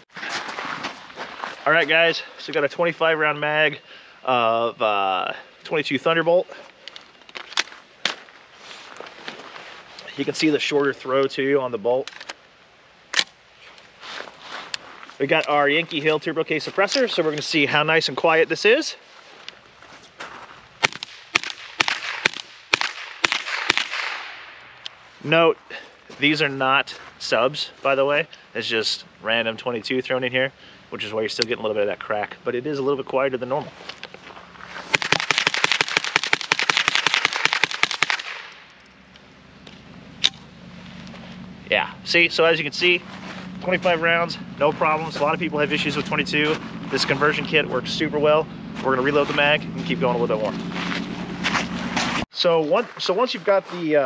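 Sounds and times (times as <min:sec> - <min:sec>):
handling rustle: 0:00.1 - 0:02.0, 0:06.5 - 0:10.7, 0:13.1 - 0:17.7, 0:19.0 - 0:21.1, 0:33.6 - 0:35.8, 0:37.8 - 0:41.6, 0:42.8 - 0:43.9
suppressed rifle shots: 0:20.8 - 0:24.5, 0:34.9 - 0:38.5.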